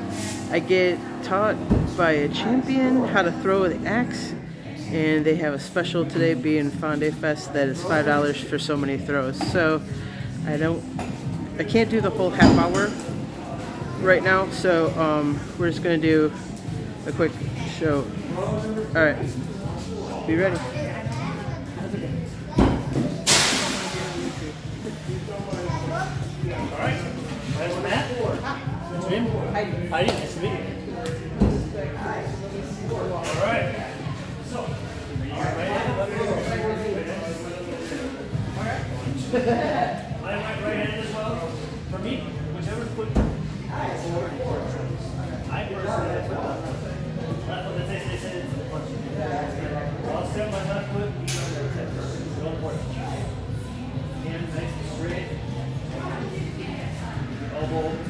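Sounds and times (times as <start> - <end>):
sharp crash with hissing tail: 23.2 - 24.3.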